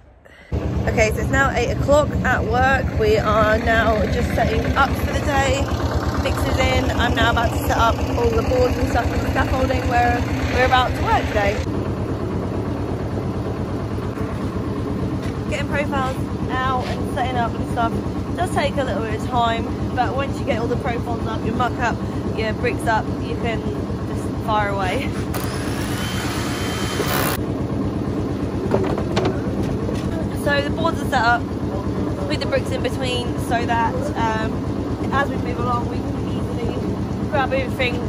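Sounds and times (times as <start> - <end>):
diesel engine idling: 0.1 - 38.0.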